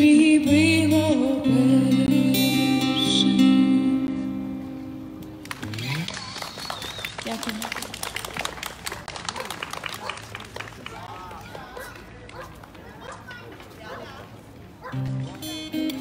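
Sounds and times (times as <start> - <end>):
acoustic guitar chord ringing: 0.4 - 5.2
hands clapping: 5.2 - 12.8.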